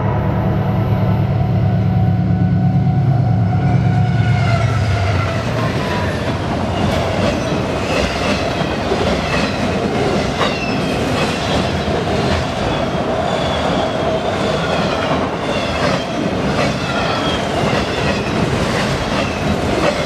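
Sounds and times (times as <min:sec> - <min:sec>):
train wheels rumbling on rails: 0:00.0 - 0:20.0.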